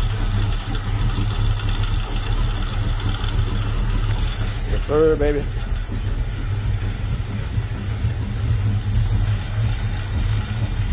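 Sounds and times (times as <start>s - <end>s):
car engine idling: 0.0s - 10.9s.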